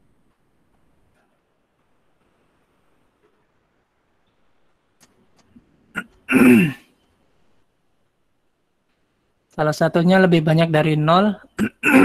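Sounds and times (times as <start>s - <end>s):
man clearing throat: 6.0s - 6.8s, 11.6s - 12.0s.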